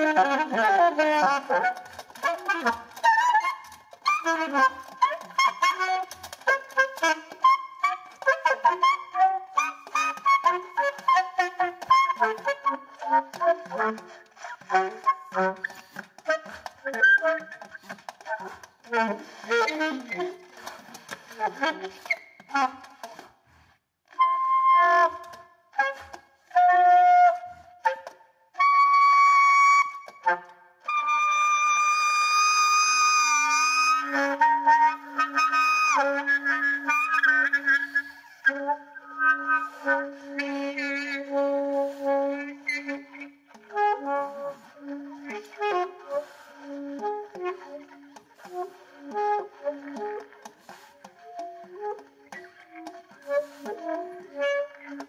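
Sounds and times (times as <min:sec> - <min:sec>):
solo saxophone improvising: 0:00.0 - 0:55.0.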